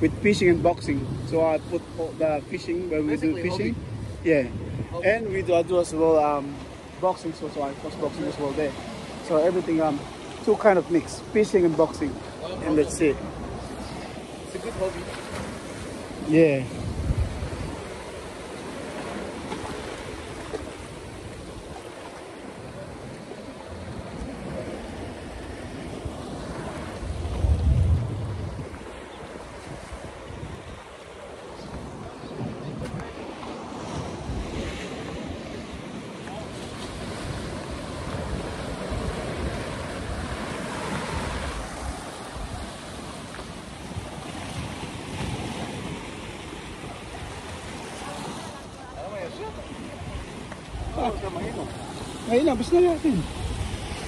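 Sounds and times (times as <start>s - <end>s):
surf washing over rocks: 0.0s - 54.0s
wind buffeting microphone: 0.0s - 54.0s.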